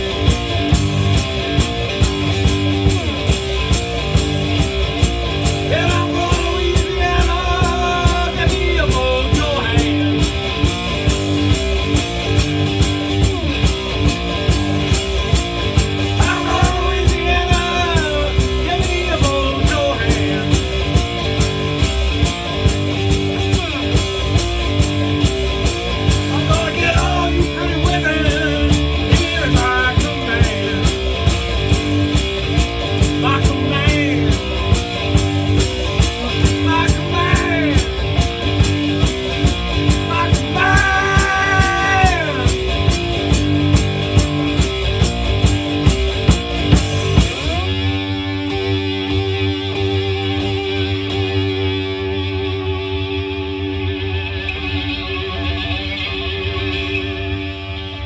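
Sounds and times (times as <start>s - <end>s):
slide guitar playing blues: 0.0s - 58.0s.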